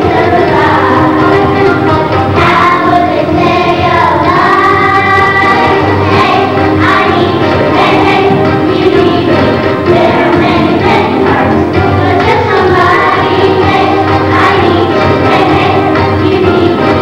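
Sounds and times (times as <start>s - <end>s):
children singing: 0.0s - 17.0s
musical accompaniment: 0.0s - 17.0s.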